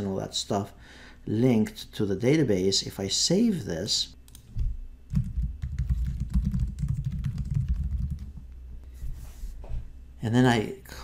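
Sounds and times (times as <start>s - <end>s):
typing on computer keyboard: 5.1s - 8.3s.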